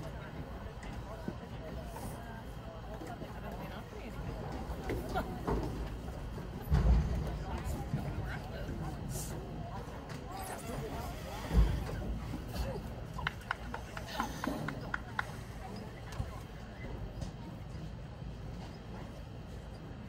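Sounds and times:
distant voices chatter: 0:00.0 - 0:20.0.

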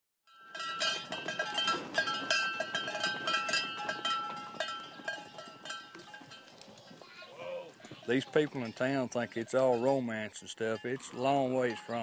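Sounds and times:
metallic jingling and clanking: 0:00.3 - 0:07.0, 0:08.1 - 0:12.0.

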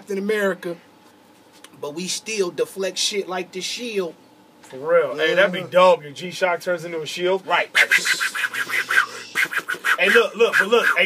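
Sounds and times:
man laughing: 0:07.9 - 0:09.7.

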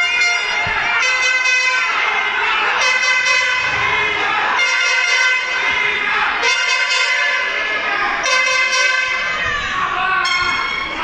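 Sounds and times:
air horns blasting: 0:00.0 - 0:11.0
fans shouting: 0:00.0 - 0:11.0.

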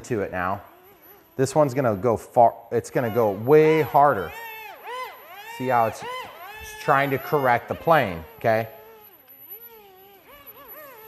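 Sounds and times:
small electric motors whining: 0:00.0 - 0:11.0.

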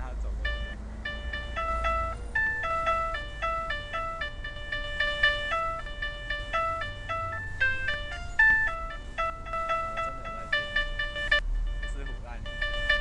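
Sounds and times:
chime-like electronic melody: 0:00.0 - 0:13.0.

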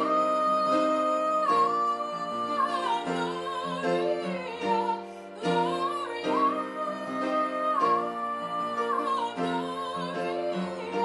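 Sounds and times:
upright piano: 0:00.0 - 0:11.0
woman singing with vibrato: 0:00.0 - 0:11.0.

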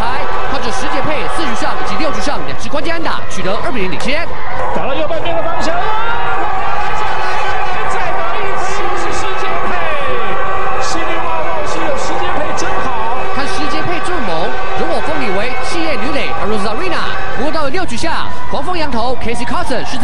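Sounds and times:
crowd noise: 0:00.0 - 0:20.0
sports commentary: 0:00.0 - 0:20.0.

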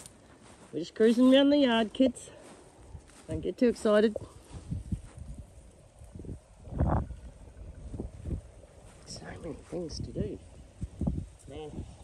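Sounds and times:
wind buffeting microphone: 0:02.4 - 0:12.0.

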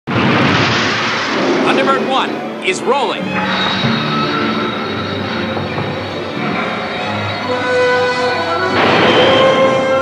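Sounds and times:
man speaking: 0:01.6 - 0:03.2.

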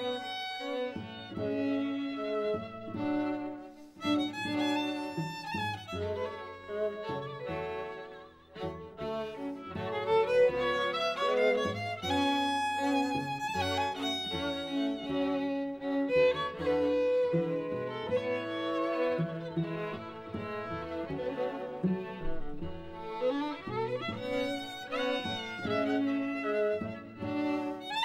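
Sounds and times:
string quartet playing: 0:00.0 - 0:28.0.

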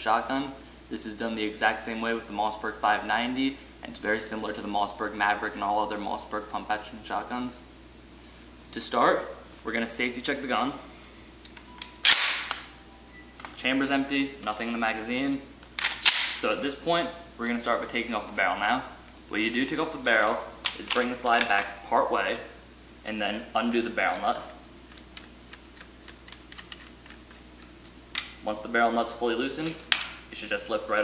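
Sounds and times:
shotgun being racked: 0:12.0 - 0:12.7, 0:15.8 - 0:16.4.

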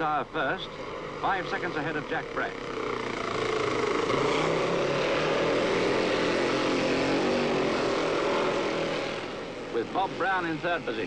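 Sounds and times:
racing motorcycles passing: 0:00.0 - 0:11.0.

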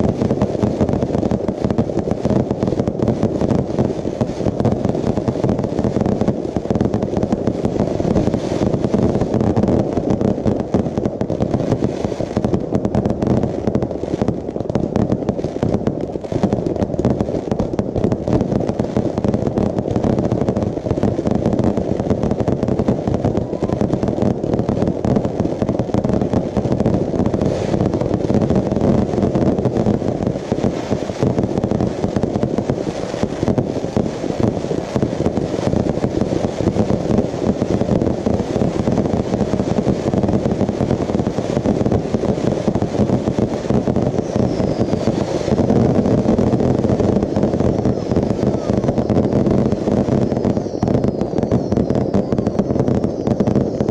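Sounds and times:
fireworks booms and bangs: 0:00.0 - 0:53.9.

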